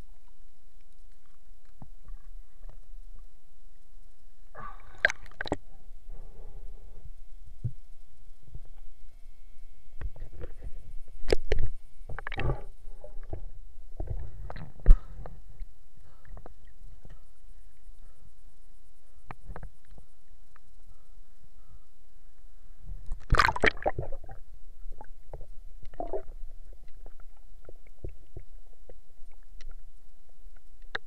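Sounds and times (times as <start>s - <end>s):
muffled underwater rumble: 0.0s - 31.0s
underwater rumbling water: 10.0s - 15.6s, 22.8s - 31.0s.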